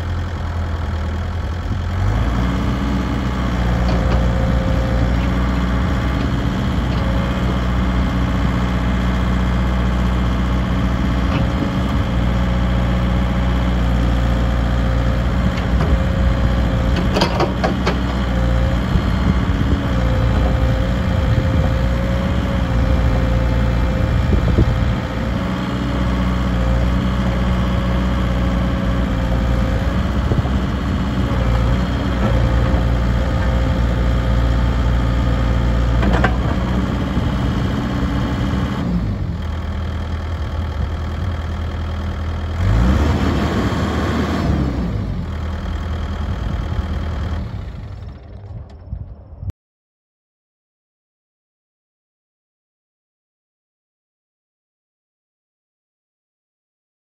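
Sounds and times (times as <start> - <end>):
diesel engine running: 0.0 - 49.5.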